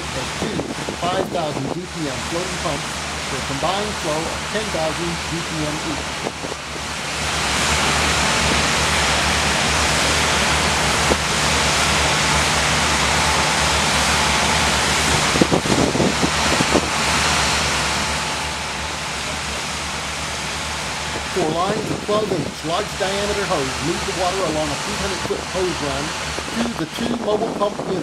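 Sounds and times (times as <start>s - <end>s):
pump engines droning: 0.0s - 28.0s
rushing water spray: 0.0s - 28.0s.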